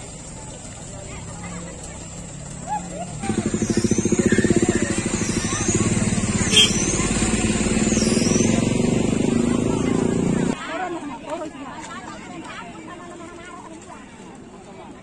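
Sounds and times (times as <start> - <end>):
vehicle engine running: 0.0 - 10.6.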